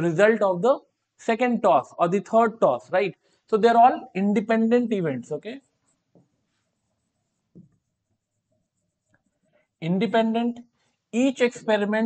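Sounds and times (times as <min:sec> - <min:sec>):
man speaking: 0:00.0 - 0:05.6, 0:09.8 - 0:10.6, 0:11.2 - 0:12.0
marker writing on whiteboard: 0:04.4 - 0:09.8.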